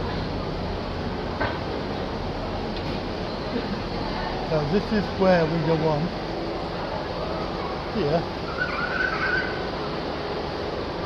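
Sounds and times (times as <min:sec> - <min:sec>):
railway station platform noise: 0:00.0 - 0:11.0.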